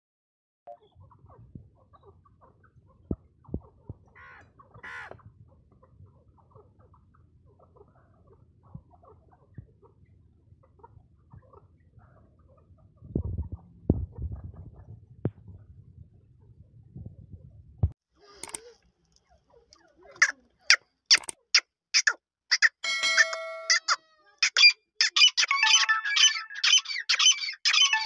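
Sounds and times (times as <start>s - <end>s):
soft bird clucking: 0.8s - 17.6s, 18.4s - 25.6s
high-pitched bird call: 22.0s - 28.0s.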